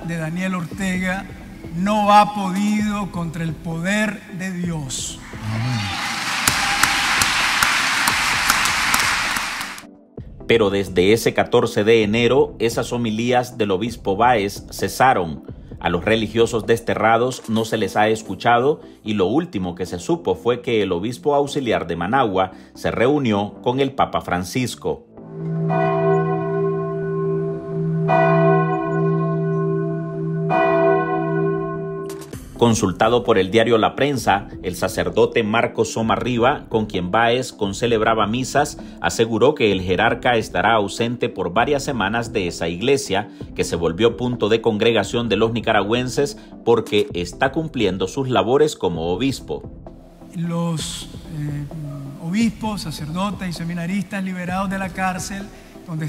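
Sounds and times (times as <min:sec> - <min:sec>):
congregation applauding: 0:05.2 - 0:09.9
church bell tolling: 0:25.5 - 0:32.1.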